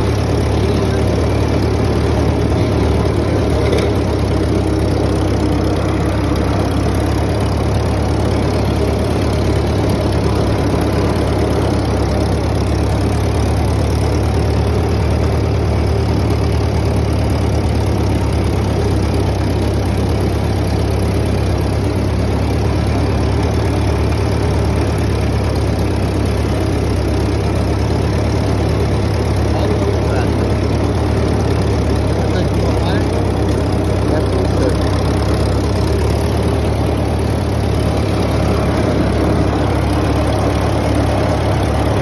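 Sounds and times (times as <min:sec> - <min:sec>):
tractor engine running: 0:00.0 - 0:42.0.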